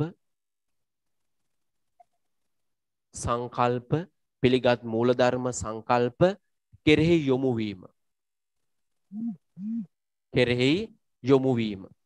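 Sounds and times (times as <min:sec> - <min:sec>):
man humming: 0:09.1 - 0:10.0.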